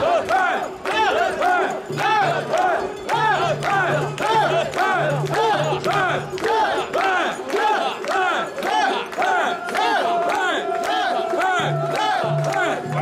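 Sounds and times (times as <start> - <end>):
crowd chanting in unison: 0.0 - 13.0.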